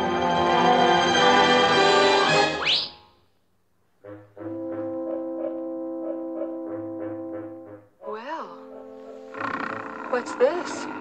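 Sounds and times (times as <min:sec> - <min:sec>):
orchestral film music: 0:00.0 - 0:02.7, 0:04.4 - 0:07.9
low brass chord: 0:04.0 - 0:07.9.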